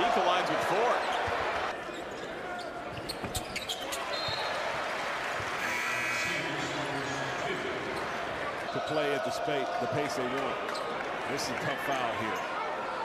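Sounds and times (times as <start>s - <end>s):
crowd noise: 0.0s - 13.0s.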